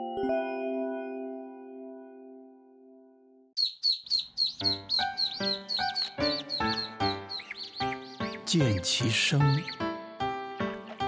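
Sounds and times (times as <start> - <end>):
chick peeping: 3.6 - 9.9.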